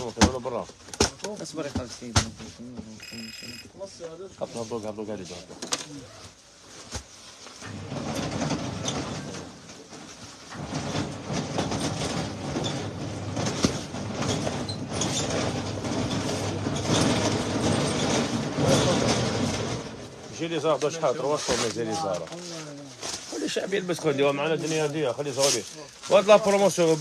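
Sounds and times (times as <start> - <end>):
rustles: 19.3 - 27.0.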